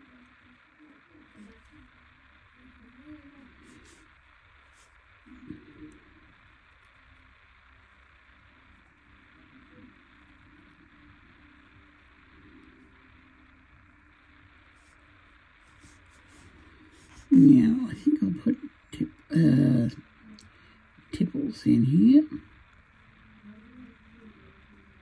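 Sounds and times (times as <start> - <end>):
muffled television voices: 0.0 - 25.0
steady hiss: 0.0 - 25.0.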